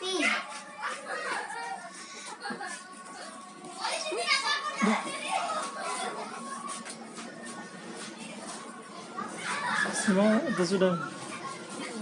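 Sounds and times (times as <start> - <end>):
children's voices: 0.0 - 12.0.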